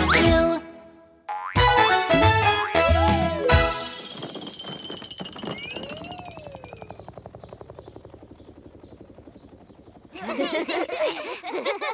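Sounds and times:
whistling pitch glides: 0:02.7 - 0:07.2
rapid pulsing rattle: 0:03.8 - 0:11.3.

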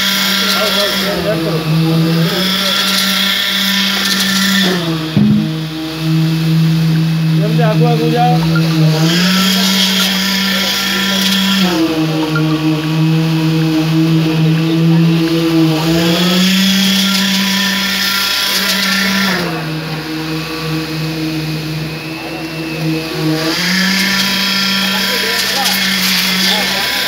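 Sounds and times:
concrete pouring machinery humming: 0:00.0 - 0:27.0.

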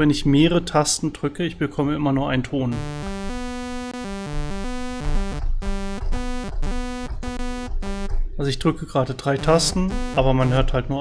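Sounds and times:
sawtooth synthesizer notes: 0:02.7 - 0:08.2, 0:09.3 - 0:10.7.

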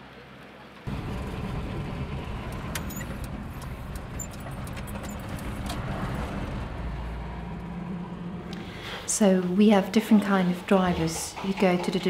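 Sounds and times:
minibus engine running: 0:00.0 - 0:12.0
light clicks and rattles: 0:02.5 - 0:05.9.

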